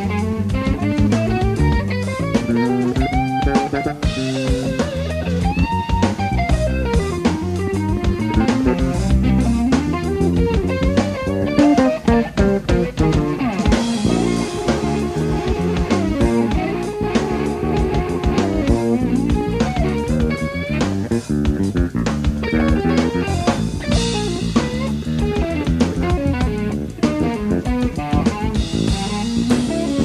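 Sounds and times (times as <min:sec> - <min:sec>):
drum kit: 0:00.0 - 0:30.0
electric bass: 0:00.0 - 0:30.0
electric guitar bent notes: 0:00.0 - 0:30.0.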